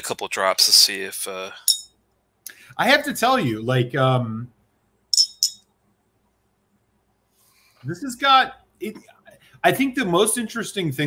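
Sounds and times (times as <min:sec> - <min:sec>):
glass clinking on glass: 0:01.7 - 0:02.0, 0:05.1 - 0:05.6.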